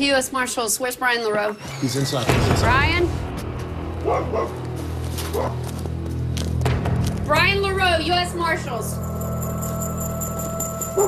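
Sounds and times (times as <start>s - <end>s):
background music with low drone: 1.7s - 11.0s
dog barks: 4.0s - 5.7s.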